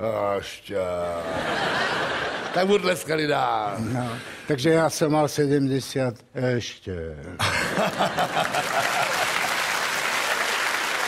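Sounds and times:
audience laughter: 1.2 - 2.8, 7.4 - 9.7
audience applauding: 7.8 - 11.0.

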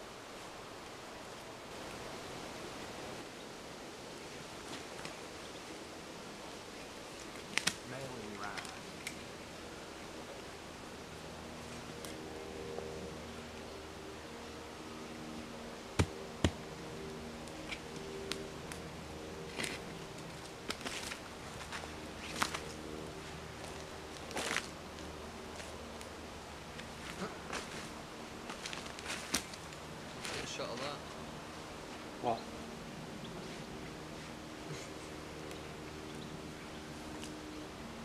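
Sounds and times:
faint buzzing drone: 0.0 - 38.0.

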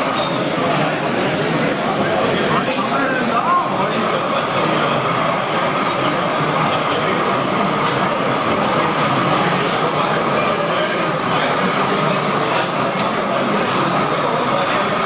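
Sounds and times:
murmur of many voices: 0.0 - 15.0
model locomotive whine: 0.1 - 15.0.

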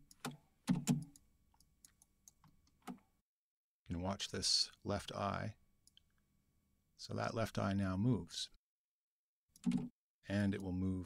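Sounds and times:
computer mouse clicks: 9.6 - 9.9.

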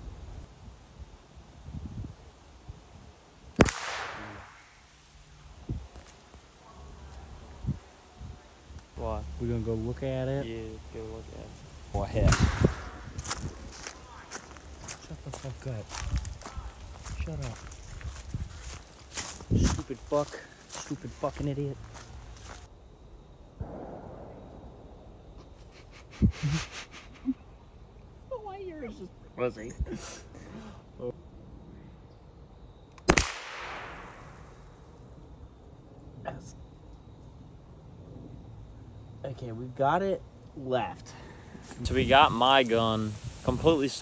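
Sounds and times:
rifle shot echoing through woods: 3.6 - 4.9, 12.2 - 13.4, 23.6 - 25.1, 33.0 - 34.8
sharp bang: 12.2 - 13.2
person laughing: 25.4 - 27.5.

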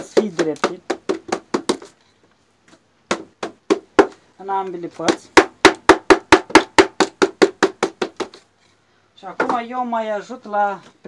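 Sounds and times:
wooden mallet knocking on reeds: 0.0 - 1.9, 3.1 - 4.2, 5.0 - 8.4.

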